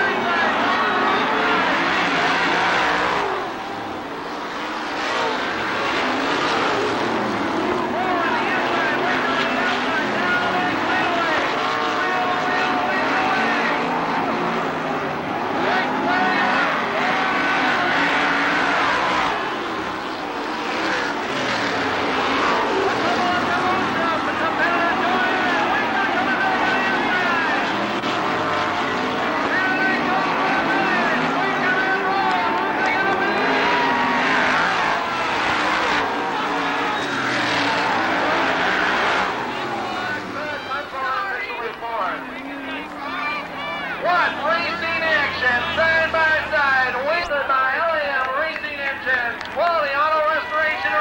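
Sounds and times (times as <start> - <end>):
racing car engines: 0.0 - 51.0.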